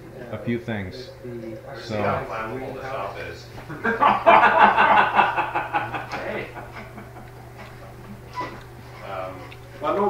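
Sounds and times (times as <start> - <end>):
person laughing: 3.8 - 7.3.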